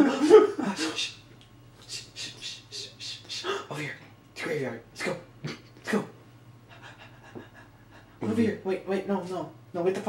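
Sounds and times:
person wheezing laughter: 0:00.0 - 0:01.1.

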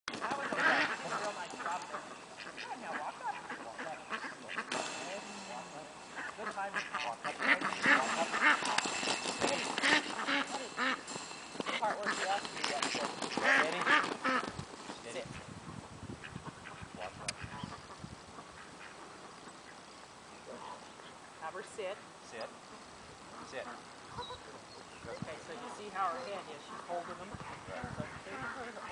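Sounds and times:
ducks quacking: 0:00.1 - 0:21.9, 0:22.5 - 0:28.9.

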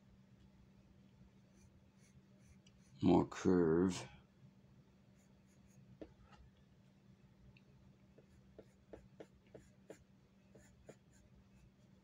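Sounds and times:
pencil scratching on paper: 0:01.5 - 0:03.1, 0:05.2 - 0:06.2, 0:08.2 - 0:12.0.

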